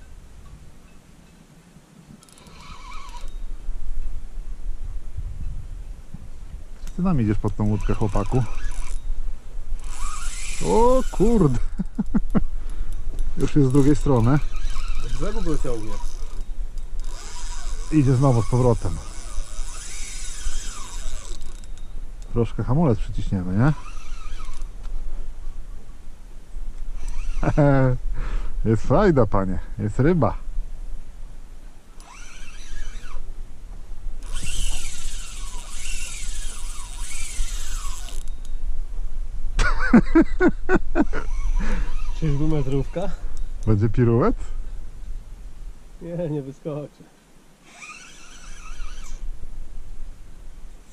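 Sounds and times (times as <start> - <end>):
fishing reel drag buzzing: 2.2 - 3.6, 7.4 - 22.3, 23.5 - 24.8, 26.9 - 27.9, 32.0 - 33.3, 34.2 - 38.6, 41.0 - 43.6, 47.6 - 49.4.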